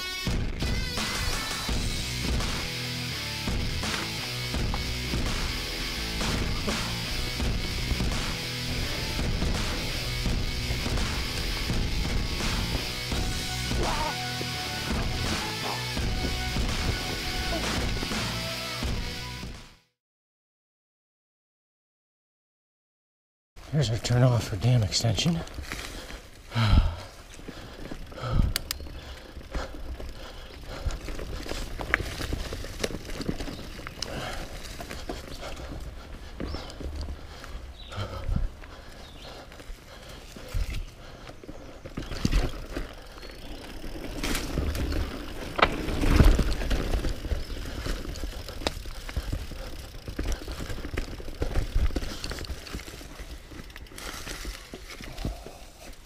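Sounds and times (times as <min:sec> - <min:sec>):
bike tyres rolling on dirt: 0:00.0 - 0:19.4, 0:23.6 - 0:56.0
bike knocking on roots and rocks: 0:06.2 - 0:18.3, 0:25.0 - 0:37.6, 0:39.5 - 0:56.0
bike chain and frame rattling: 0:27.2 - 0:37.4, 0:39.3 - 0:55.8.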